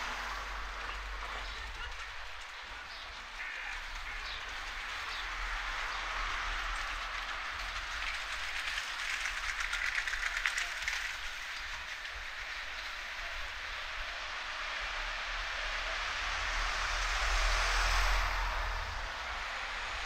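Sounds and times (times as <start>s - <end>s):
street ambience: 0.0s - 20.0s
rattling rolling sound: 0.7s - 13.8s.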